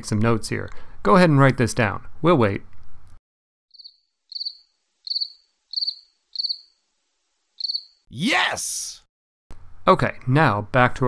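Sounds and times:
cricket chirping: 0:03.7 - 0:06.8, 0:07.5 - 0:08.0.

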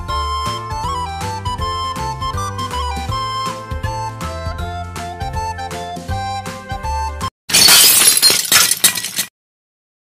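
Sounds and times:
bright music track: 0:00.0 - 0:07.3
glass shattering: 0:07.5 - 0:09.3
tinkling glass shards: 0:07.5 - 0:09.3.

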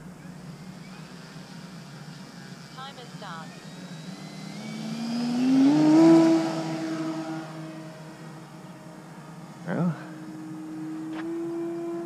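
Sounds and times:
electric motor and propeller whine: 0:00.0 - 0:12.0.

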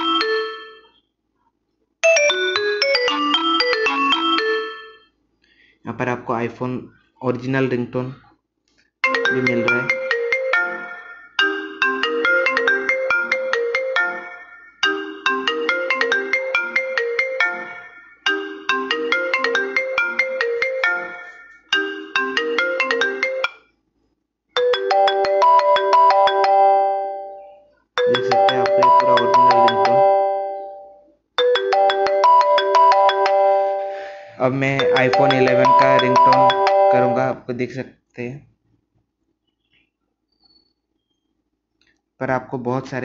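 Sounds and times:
marimba ringtone melody: 0:00.0 - 0:01.0, 0:02.0 - 0:05.1, 0:09.0 - 0:23.7, 0:24.6 - 0:37.4
ringtone melody: 0:00.0 - 0:01.2, 0:02.0 - 0:05.2, 0:09.0 - 0:23.8, 0:24.6 - 0:37.4.

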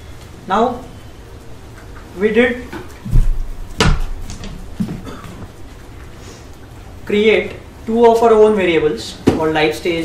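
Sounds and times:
sharp knock: 0:03.1 - 0:04.5
dull low thump: 0:03.1 - 0:05.2.

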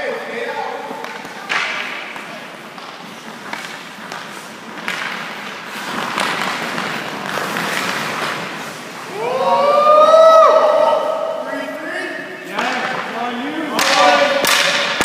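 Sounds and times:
skates scraping on ice: 0:00.7 - 0:09.4
stick knocking puck: 0:01.0 - 0:08.1, 0:13.7 - 0:15.0.

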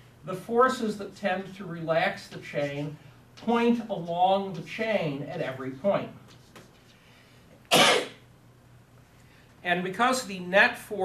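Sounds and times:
man coughing: 0:07.7 - 0:08.2.

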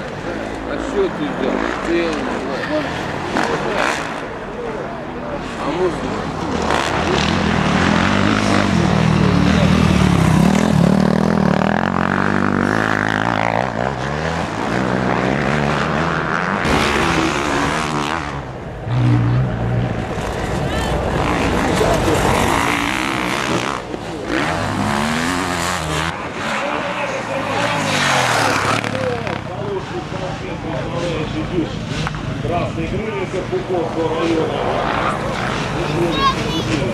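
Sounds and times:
motorcycle engines revving: 0:00.0 - 0:36.9.

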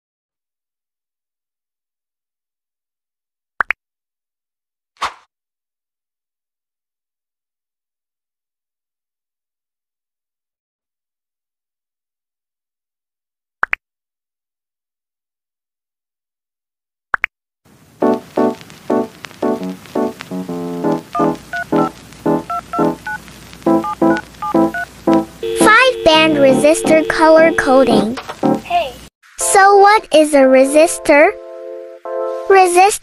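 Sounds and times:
cartoon pop sound effects: 0:03.6 - 0:03.8.

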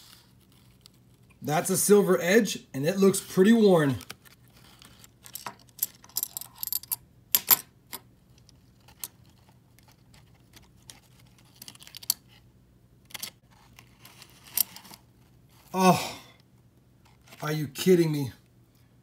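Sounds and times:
coins clicking together: 0:05.3 - 0:08.0.

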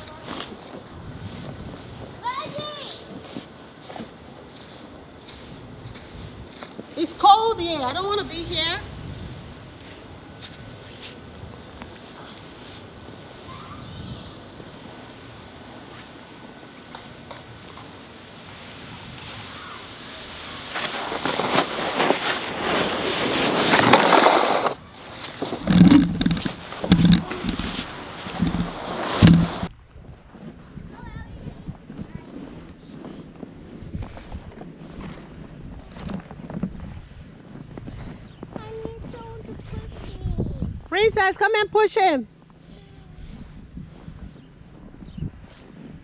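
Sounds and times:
plastic sled hissing on snow: 0:00.0 - 0:29.7.

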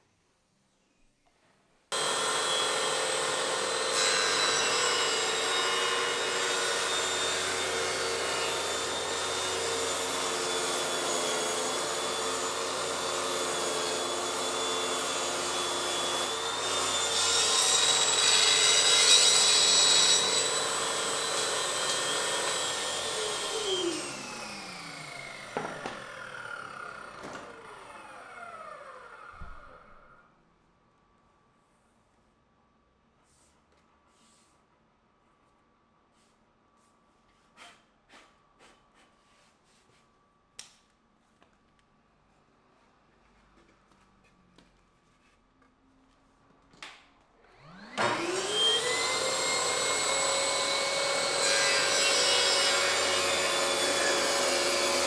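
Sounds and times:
shop vacuum running: 0:02.0 - 0:30.2, 0:47.4 - 0:55.0
table saw running with whine: 0:02.0 - 0:30.2, 0:47.5 - 0:55.0.

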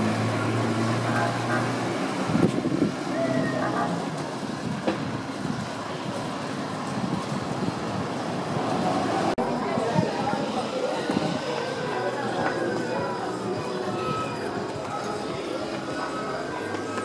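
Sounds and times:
vehicle engine humming: 0:00.0 - 0:09.5
street noise: 0:00.0 - 0:17.0.

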